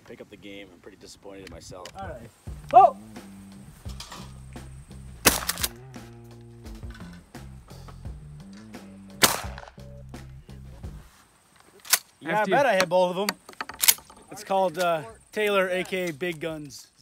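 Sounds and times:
background music with bass line: 0:02.0 - 0:11.1
shotgun shots: 0:05.2 - 0:05.8, 0:09.2 - 0:09.8.

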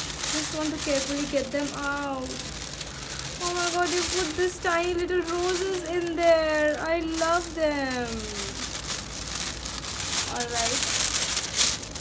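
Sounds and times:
shredded paper crinkling: 0:00.0 - 0:12.0.

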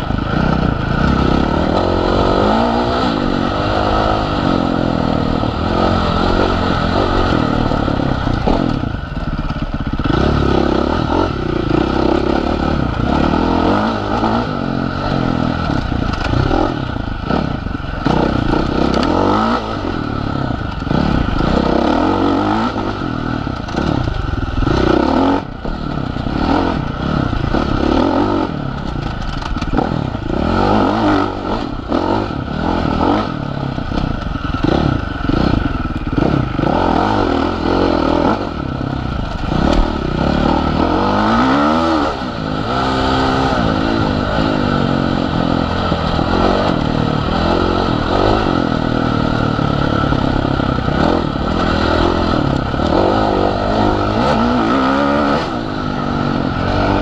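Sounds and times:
bike rattling over bumps: 0:00.0 - 0:57.0
dirt bike engine revving: 0:00.0 - 0:57.0.

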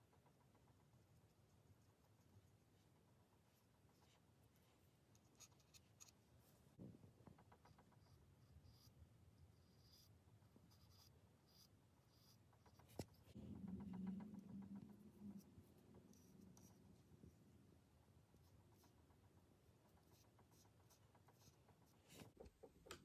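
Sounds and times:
faint low hum: 0:00.0 - 0:23.0
paintbrush scratching on wood: 0:07.4 - 0:17.4, 0:18.4 - 0:22.4.

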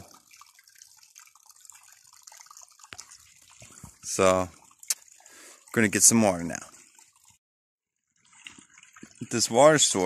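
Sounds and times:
small stream running water: 0:00.0 - 0:10.0.

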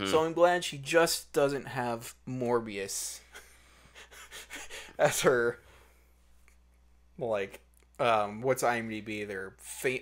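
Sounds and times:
soft breaths: 0:05.6 - 0:06.6.

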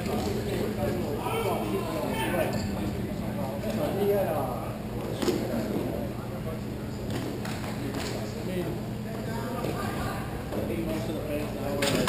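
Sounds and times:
players calling out: 0:01.0 - 0:02.6.

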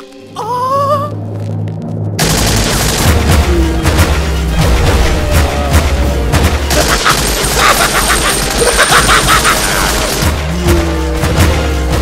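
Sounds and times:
automatic gunfire: 0:02.2 - 0:03.3.

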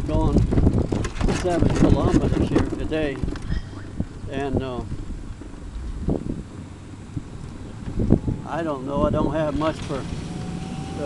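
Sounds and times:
tyres rolling on asphalt: 0:00.0 - 0:11.0
wind on microphone: 0:00.0 - 0:11.0.

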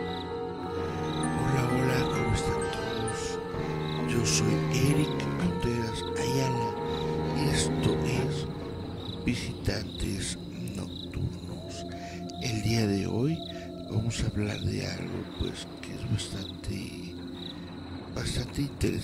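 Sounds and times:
crickets chirping: 0:00.0 - 0:19.0
faint eerie tones: 0:00.0 - 0:19.0.

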